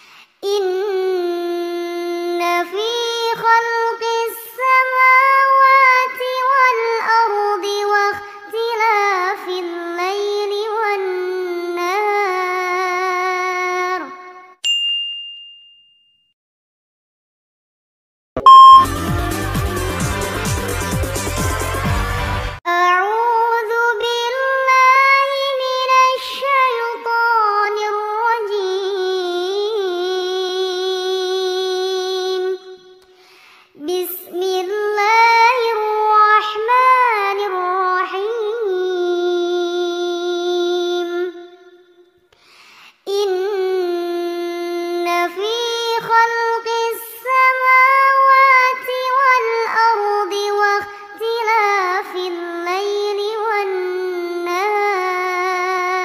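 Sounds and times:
woman breathing in: 0.0 - 0.4, 33.1 - 33.8, 42.3 - 43.0
child chanting recitation: 0.5 - 14.2, 22.7 - 33.0, 33.8 - 41.8, 43.1 - 56.0.

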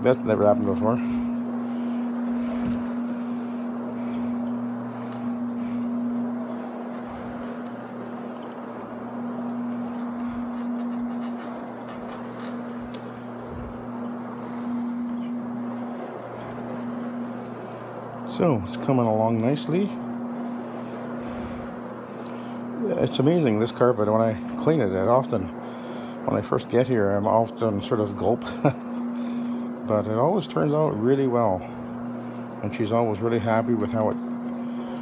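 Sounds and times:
carpet cleaning machine running: 0.0 - 35.0.

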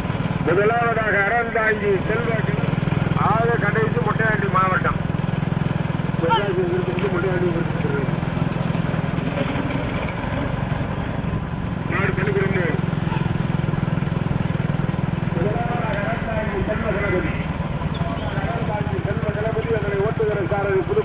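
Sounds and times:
vehicle engine droning: 0.0 - 21.0
men calling out: 6.1 - 6.8, 11.8 - 13.6.

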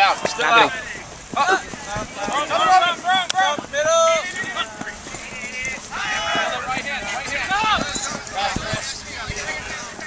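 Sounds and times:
feet running on grass: 0.0 - 10.0
people shouting: 0.0 - 10.0.

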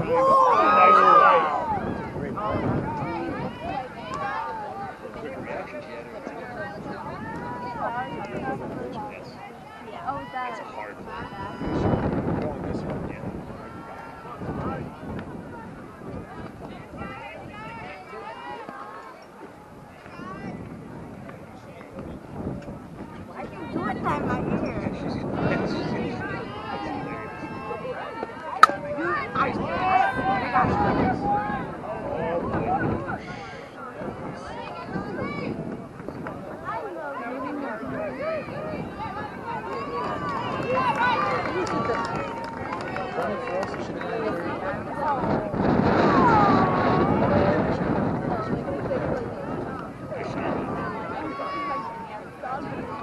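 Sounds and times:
crowd chattering and calling out: 0.0 - 53.0
spectators talking: 0.0 - 53.0.

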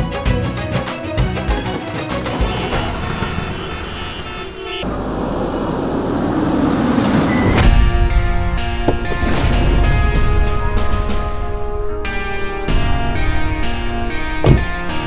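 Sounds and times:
background music: 0.0 - 4.1, 7.1 - 15.0
vehicle approaching: 1.8 - 14.1
heavy music: 7.2 - 15.0.

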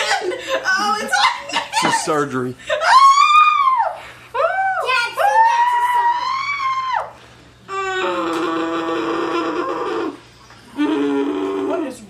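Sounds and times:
girl screaming: 2.8 - 8.3
girl moaning: 7.7 - 11.9.

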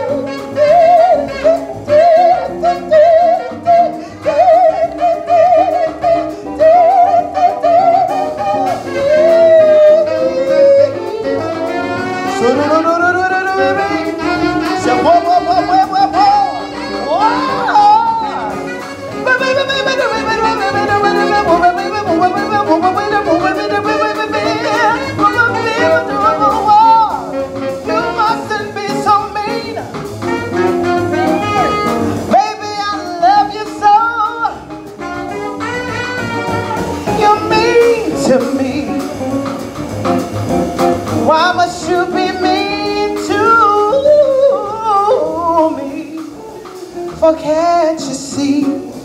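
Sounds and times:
saxophone melody with vibrato: 0.0 - 39.6
guitar chords: 0.0 - 49.0
jazz band playing: 0.0 - 49.0
walking bass: 0.0 - 49.0
female singer with vibrato: 14.8 - 18.6.

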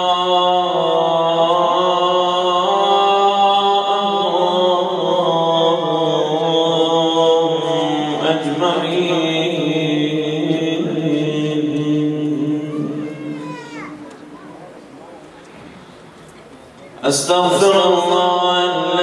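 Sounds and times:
man chanting into a microphone: 0.0 - 13.4, 17.0 - 19.0.

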